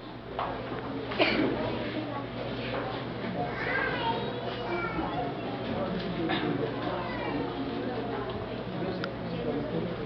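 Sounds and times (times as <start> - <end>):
people talking: 1.1 - 10.0.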